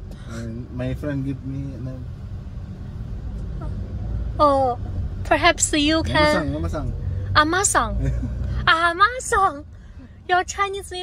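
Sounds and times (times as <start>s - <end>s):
car rumble inside cabin: 0.0s - 11.0s.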